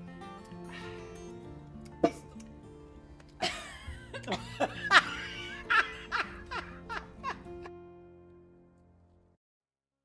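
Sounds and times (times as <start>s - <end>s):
background music with held notes: 0.0s - 9.4s
people laughing: 3.4s - 7.7s.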